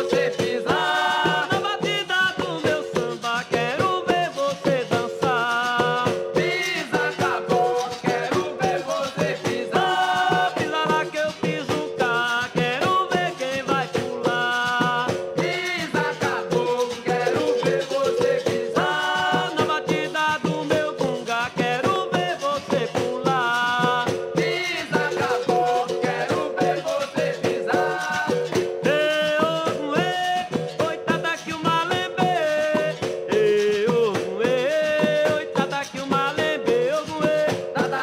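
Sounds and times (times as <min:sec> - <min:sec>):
shaken rattle: 0:00.0 - 0:38.0
steady percussion: 0:00.0 - 0:38.0
voices singing: 0:00.0 - 0:38.0.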